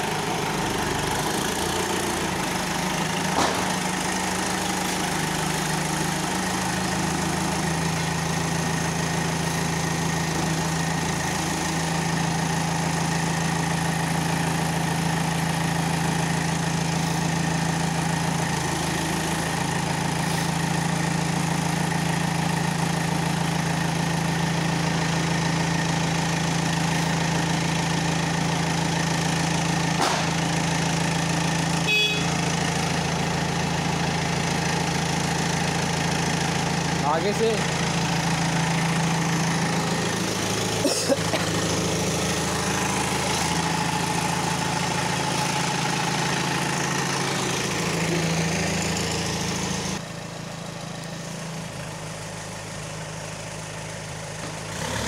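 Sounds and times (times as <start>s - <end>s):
diesel engine idling: 0.0s - 55.0s.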